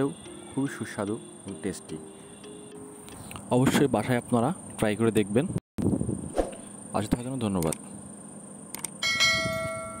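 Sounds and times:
bell chime: 9.0 - 10.0.

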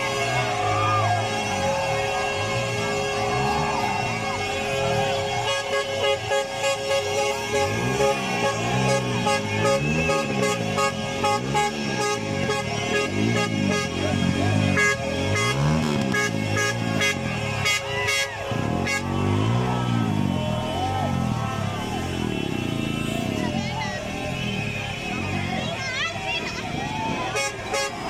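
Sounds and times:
lorry air horn blast: 0.0 - 20.3
rhythmic crowd noise: 0.0 - 28.0.

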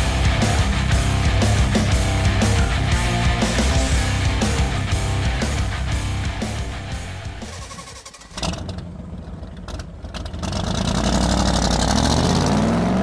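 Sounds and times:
rock background music: 0.0 - 8.4
car engine revving up: 0.0 - 13.0.

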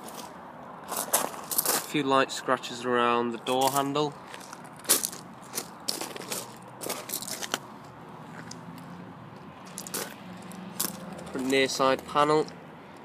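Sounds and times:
footsteps on gravel: 0.0 - 2.0, 3.4 - 12.6.

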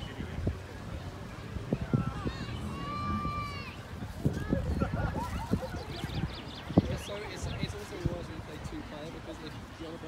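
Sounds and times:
distant chatter of people: 0.0 - 10.0.

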